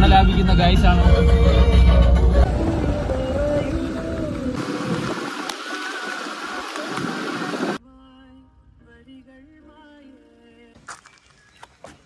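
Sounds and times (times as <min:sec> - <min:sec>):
car driving on dirt track: 0:00.0 - 0:07.8.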